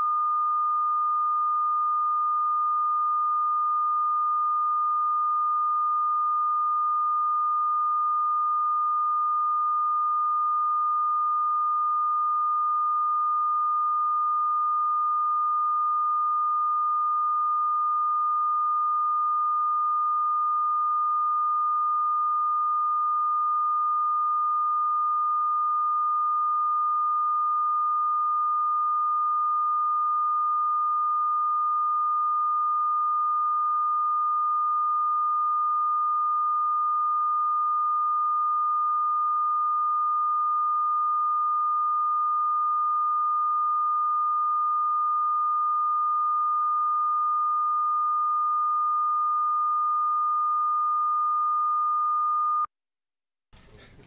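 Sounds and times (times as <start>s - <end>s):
steady high test tone: 0.0s - 52.7s.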